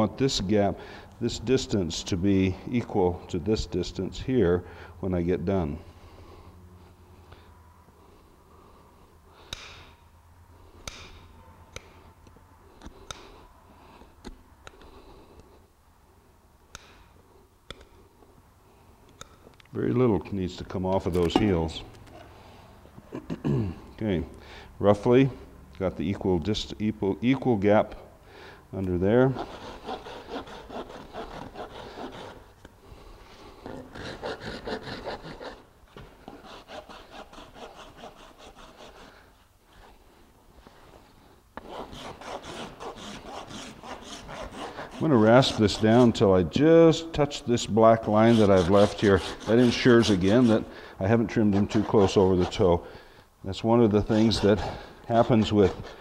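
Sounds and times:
rasp scraping hoof: 29.3 - 32.4, 33.6 - 35.6, 41.6 - 46.2, 48.0 - 50.7.

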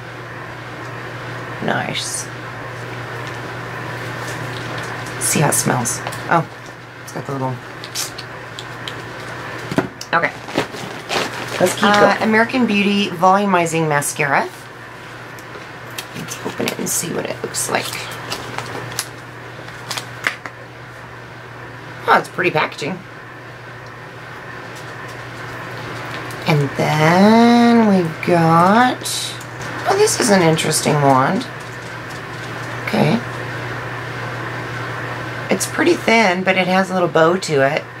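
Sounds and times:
low room hum: 0.0 - 38.0
plastic packaging rustling: 7.6 - 12.3, 17.7 - 20.5, 29.5 - 33.6.

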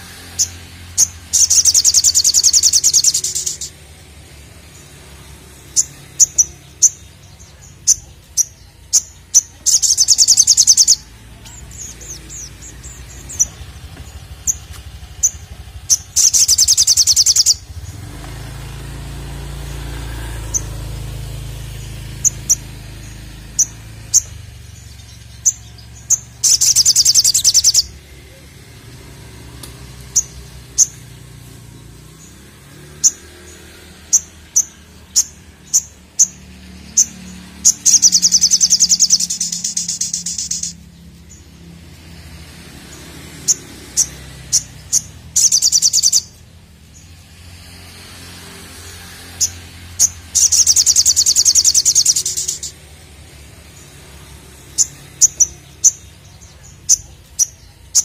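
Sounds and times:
bird chips: 0.0 - 4.0, 4.7 - 41.4, 42.0 - 46.4, 47.6 - 58.0
fast high-pitched bird trill: 0.0 - 4.0, 4.7 - 18.1, 19.6 - 28.4, 32.9 - 41.5, 43.4 - 46.4, 48.8 - 53.0.

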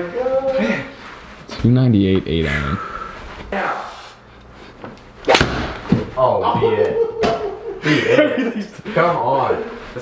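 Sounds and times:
golf club hitting ball: 5.3 - 5.9.

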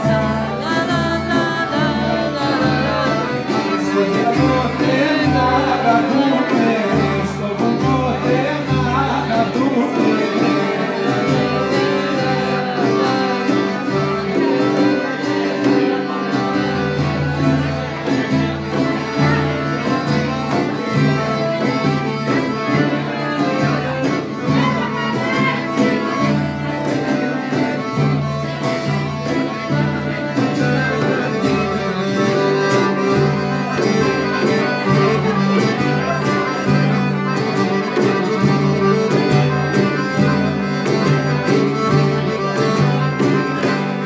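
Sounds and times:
accordion: 0.0 - 44.0
acoustic guitar: 0.0 - 44.0
frame drum beat: 0.0 - 44.0.

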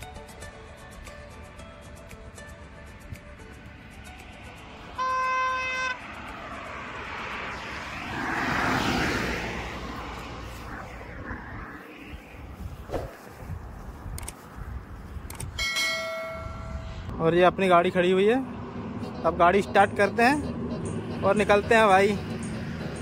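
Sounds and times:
wind on microphone: 6.4 - 17.1.

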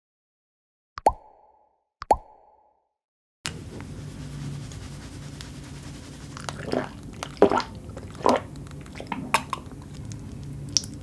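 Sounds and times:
low room noise: 3.5 - 11.0.

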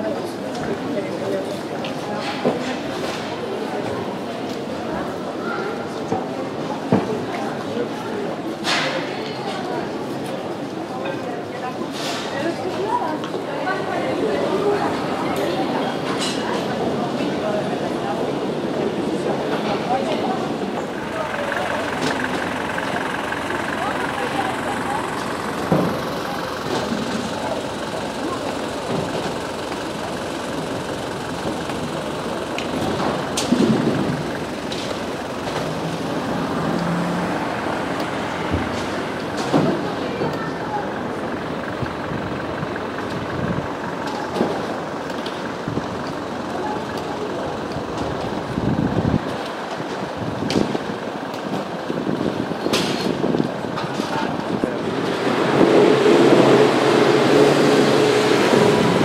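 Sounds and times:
chatter of passers-by: 0.0 - 59.0
traffic noise: 0.0 - 59.0.

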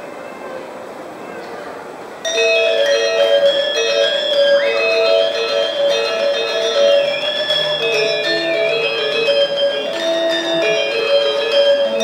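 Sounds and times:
low crowd murmur: 0.0 - 12.0
gamelan ensemble playing: 2.2 - 12.0
metallophones ringing quick notes: 2.2 - 12.0.

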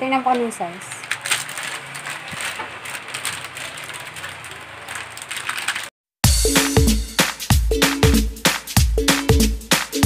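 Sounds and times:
plastic packaging crinkling: 0.2 - 6.0.

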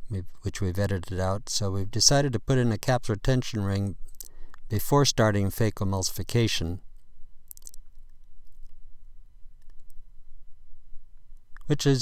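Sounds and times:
low steady hum: 0.0 - 12.0
faint clicks: 4.1 - 4.7, 7.0 - 8.8, 9.6 - 10.0.

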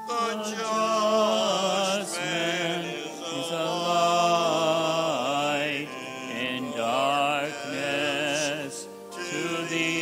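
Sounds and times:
person singing with vibrato: 0.0 - 10.0
sustained accompaniment: 0.0 - 10.0.

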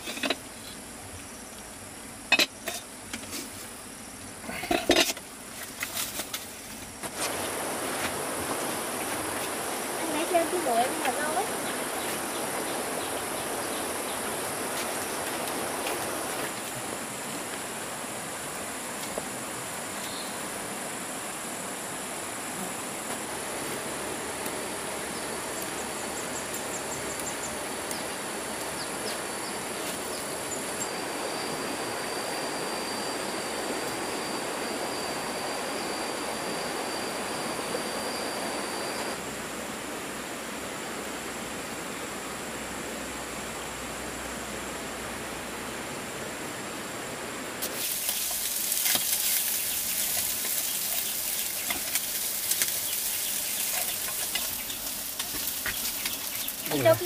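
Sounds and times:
insects calling: 0.0 - 57.0
forest stream rushing: 7.0 - 57.0
food frying: 47.6 - 57.0.

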